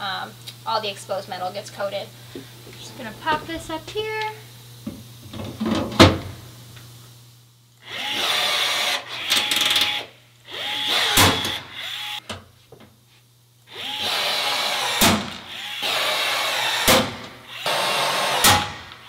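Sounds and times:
cordless drill whining: 7.8 - 12.2, 13.7 - 19.0.

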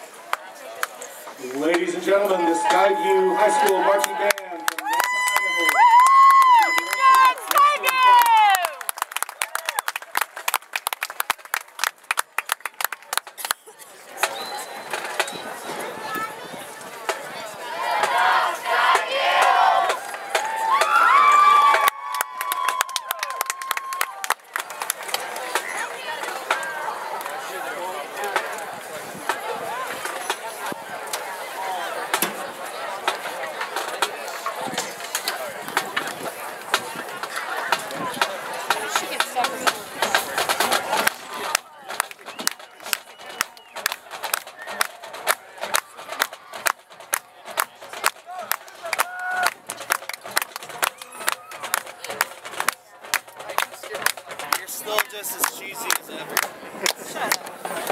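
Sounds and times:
spectators chatting: 0.0 - 57.9
marching drumline cadence: 1.2 - 57.9.

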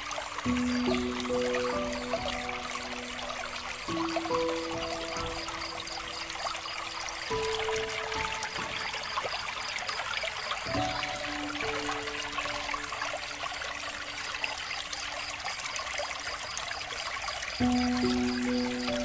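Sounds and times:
soft music with held notes: 0.0 - 9.6, 10.2 - 14.6, 17.6 - 19.0
water trickling from fountain: 0.0 - 19.0.

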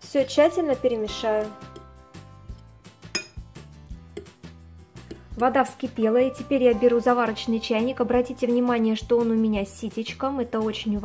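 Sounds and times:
quiet background music: 0.0 - 11.0
fork clinking against glass bowl: 3.0 - 3.5.

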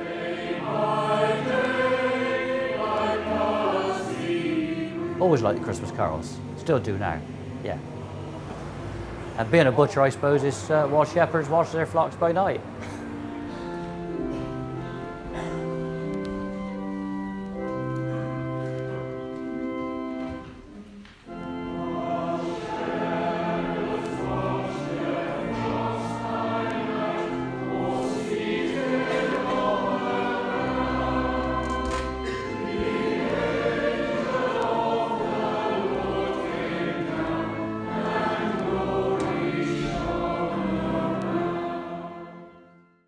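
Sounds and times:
choir and congregation singing: 0.0 - 42.9
organ: 0.0 - 43.0.

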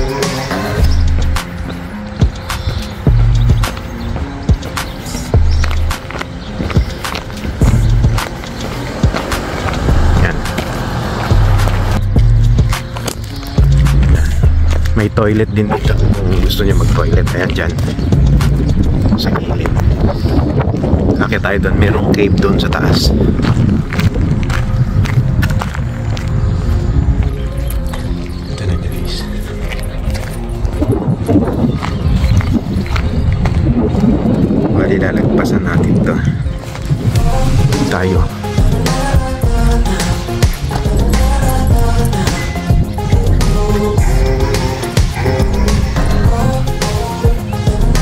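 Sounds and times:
low rumbling on microphone: 0.0 - 48.0
music playing: 0.0 - 48.0
footsteps on asphalt: 0.1 - 48.0.

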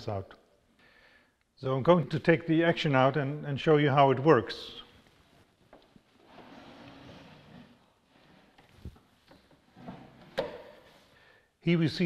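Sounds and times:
wooden sliding rustle: 6.2 - 11.1.

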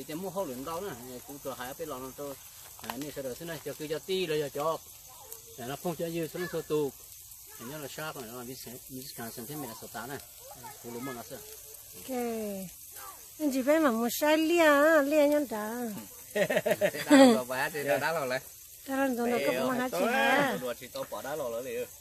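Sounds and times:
faint steady hiss: 0.0 - 22.0
man talking: 7.6 - 11.4, 16.9 - 18.5, 19.2 - 22.0.

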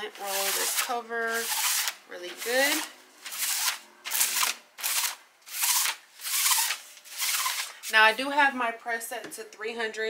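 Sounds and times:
lint roller rasping over fabric: 0.1 - 8.0.

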